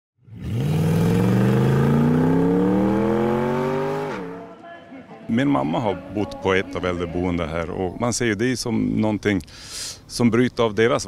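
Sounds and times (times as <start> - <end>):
car engine revving: 0.2 - 4.5.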